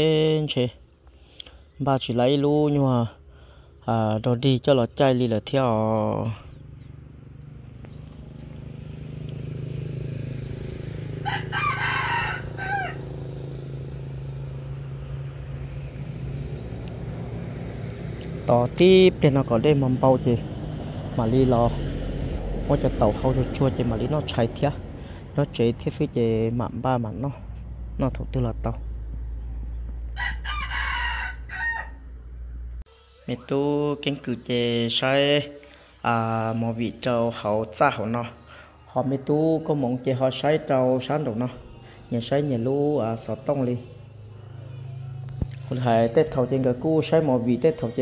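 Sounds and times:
rooster crowing: 10.6 - 14.4, 29.9 - 33.4.

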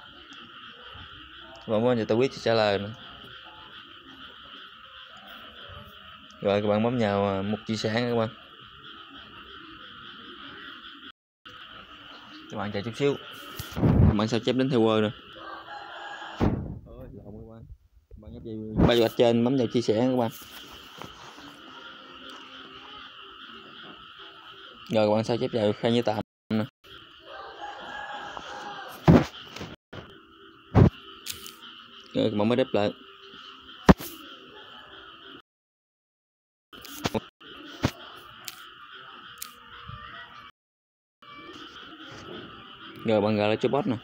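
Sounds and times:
chorus of chirring animals: 0.0 - 17.6, 18.4 - 35.4, 36.8 - 40.5, 41.2 - 44.0.

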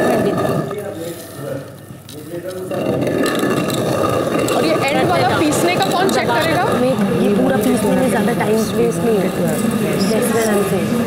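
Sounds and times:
voices: 0.0 - 11.0
stone mill grinding: 2.4 - 11.0.

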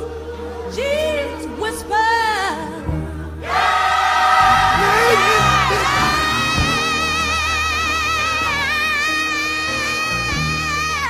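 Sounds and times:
choir holding a loud chord: 0.0 - 10.9.

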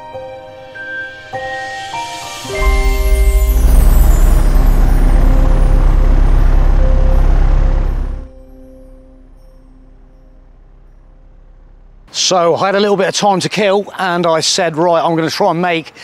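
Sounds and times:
music: 0.0 - 12.1
aircraft engines rumbling: 2.6 - 8.3.

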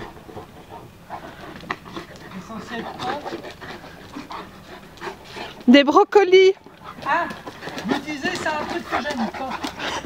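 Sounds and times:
dogs play-wrestling: 0.0 - 10.0.

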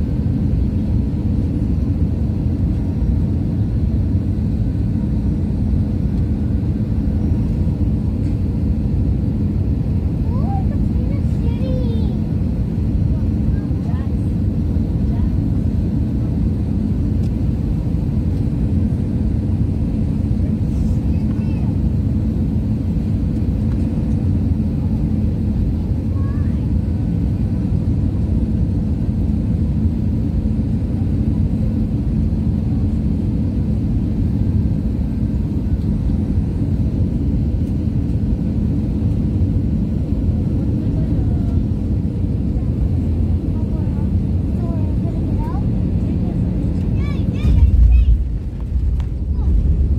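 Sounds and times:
jet engines roaring in cabin: 0.0 - 49.9.

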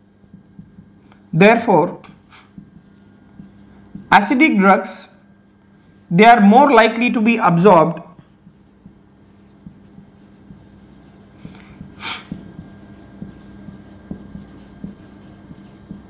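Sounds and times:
marker pen squeaking on whiteboard: 2.0 - 4.4, 8.1 - 16.0
person breathing: 11.4 - 12.4.

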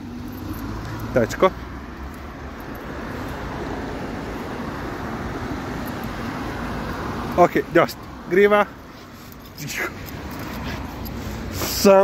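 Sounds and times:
road traffic rushing: 0.0 - 12.0.

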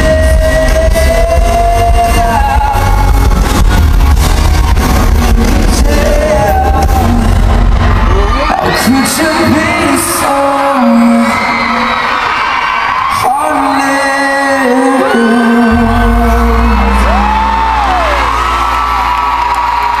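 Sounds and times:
fans whooping: 0.0 - 20.0.

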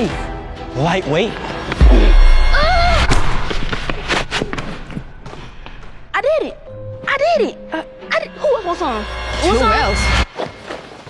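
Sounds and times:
deep boom: 1.8 - 3.6.

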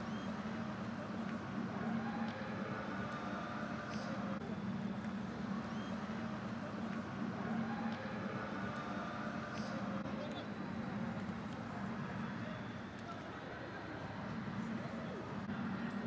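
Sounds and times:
low murmur and hum: 0.0 - 16.0.

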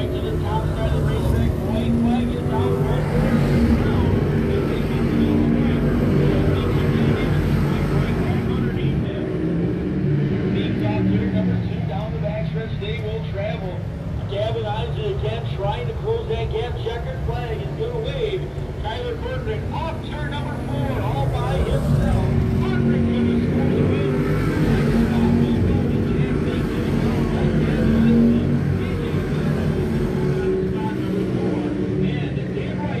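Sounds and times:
car passing: 0.0 - 33.0
people's voices: 0.0 - 33.0
racing car engines: 0.0 - 33.0.

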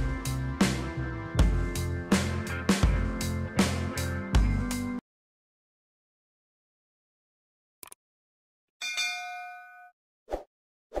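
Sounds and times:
notification bell chime: 8.8 - 9.9.

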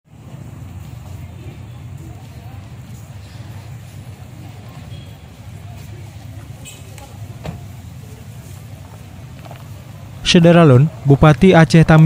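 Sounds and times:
vehicle engine idling: 0.1 - 11.2
faint voices: 0.1 - 12.0.

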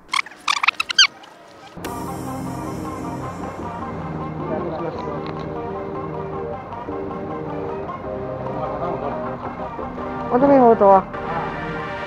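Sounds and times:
high squeaky chirps: 0.0 - 1.8
background music: 1.8 - 12.0.

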